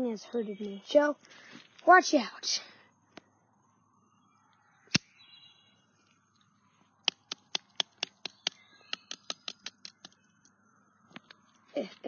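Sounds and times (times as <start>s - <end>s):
twigs and leaves snapping: 4.9s - 5.1s, 6.4s - 10.2s.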